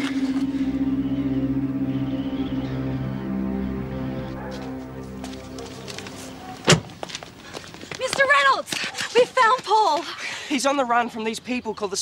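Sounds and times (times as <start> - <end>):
soundtrack music with held tones: 0.0 - 6.6
car door shutting: 6.6 - 7.0.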